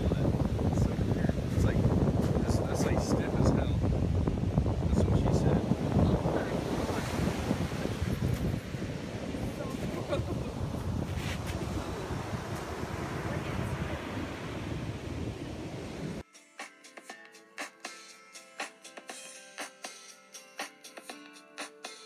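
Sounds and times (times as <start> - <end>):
ocean surf breaking: 0.0 - 16.2
wind buffeting microphone: 0.0 - 16.2
background music: 16.2 - 22.0.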